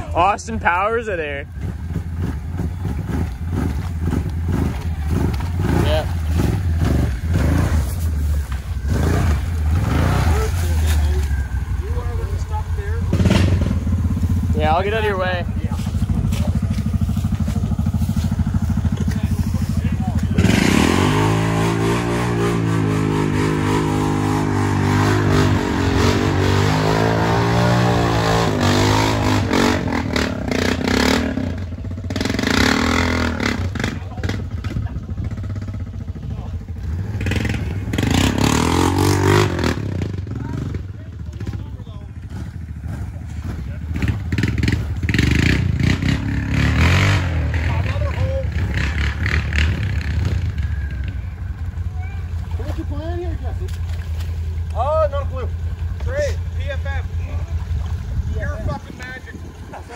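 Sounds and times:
atv engine revving: 0:00.0 - 0:59.9.

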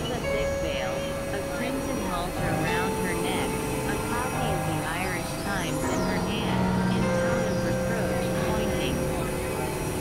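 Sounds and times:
noisy low rumble: 0:00.0 - 0:10.0
synthesizer drone: 0:00.0 - 0:10.0.

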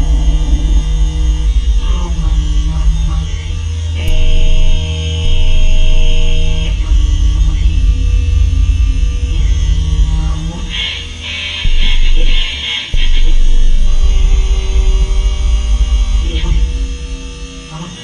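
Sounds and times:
layered sustained tones: 0:00.0 - 0:18.0
low bass drone: 0:00.0 - 0:18.0.

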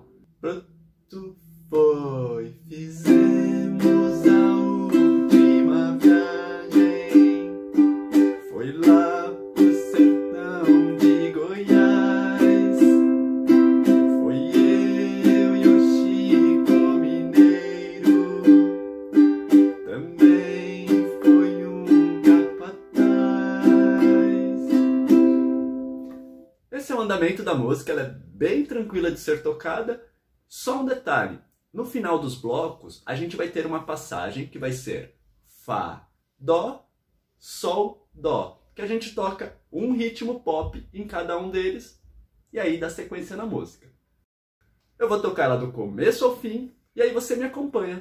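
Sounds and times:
man singing: 0:00.4 - 0:07.6, 0:08.2 - 0:13.2, 0:13.8 - 0:18.9, 0:19.5 - 0:25.2
ukulele strumming: 0:03.0 - 0:26.4.

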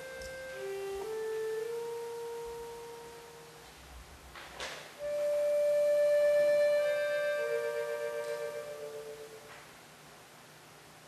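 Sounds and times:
accordion held notes: 0:00.0 - 0:03.9, 0:05.0 - 0:09.7.

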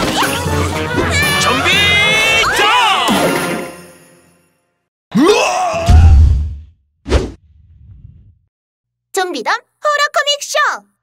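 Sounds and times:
cartoon voices shouting and cheering: 0:00.0 - 0:03.4, 0:05.1 - 0:06.4.

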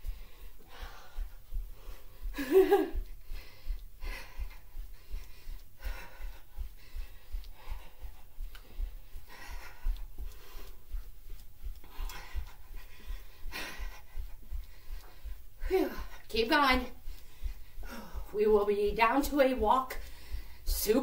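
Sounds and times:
person panting: 0:00.0 - 0:21.0.

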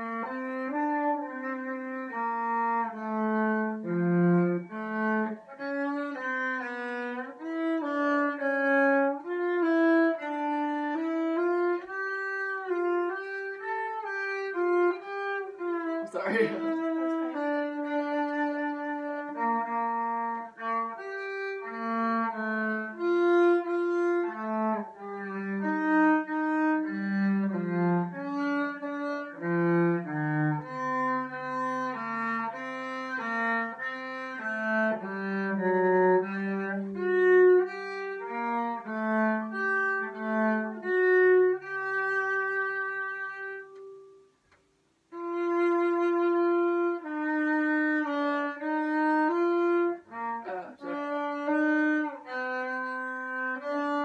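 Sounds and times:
solo cello bowed: 0:00.0 - 0:54.0.

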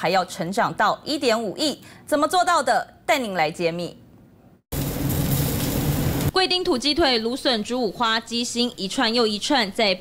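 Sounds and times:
meat sizzling on charcoal grill: 0:04.7 - 0:06.4.

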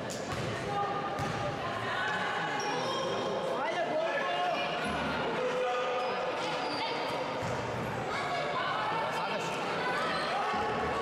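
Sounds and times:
players and coaches voices: 0:00.0 - 0:11.0.

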